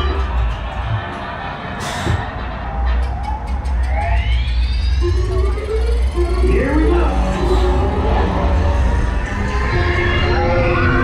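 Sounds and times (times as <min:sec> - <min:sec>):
amusement ride background music: 0:00.0 - 0:11.0.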